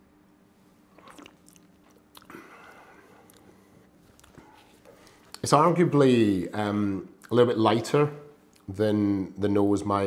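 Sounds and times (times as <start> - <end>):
wet mouth clicks: 0.9 - 5.4.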